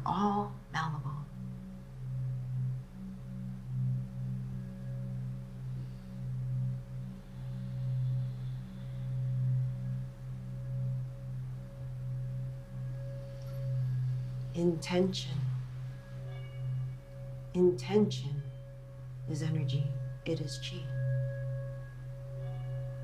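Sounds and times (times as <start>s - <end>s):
low sustained drone tone: 0.0s - 23.0s.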